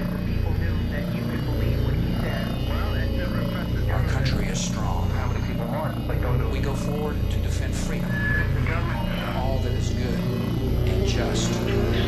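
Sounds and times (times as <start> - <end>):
low droning music: 0.0 - 12.0
man speaking: 0.0 - 12.0.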